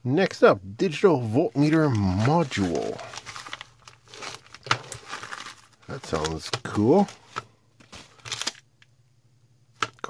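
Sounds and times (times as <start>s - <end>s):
plastic envelope crinkling: 1.2s - 8.7s.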